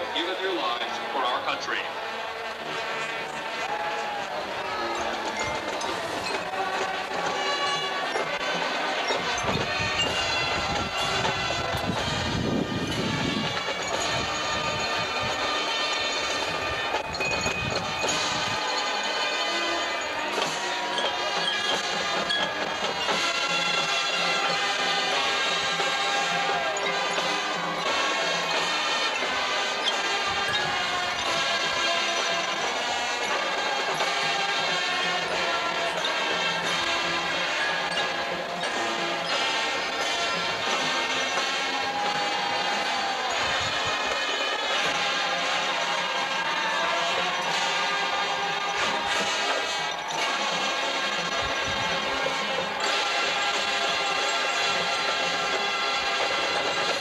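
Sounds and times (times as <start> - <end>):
brass chords: 0.0 - 57.0
drums: 0.0 - 57.0.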